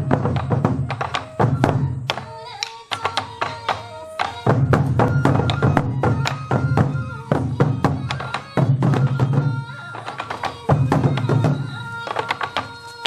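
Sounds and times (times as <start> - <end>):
bamboo flute melody: 0.0 - 13.0
taiko drums: 0.0 - 13.0.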